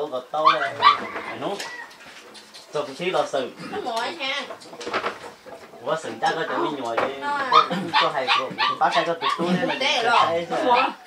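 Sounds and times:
people talking: 0.0 - 1.7, 2.8 - 4.6, 5.8 - 11.0.

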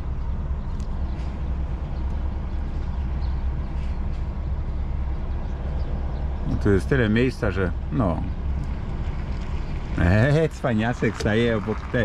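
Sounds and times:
diesel lorry engine at low revs: 0.0 - 12.0.

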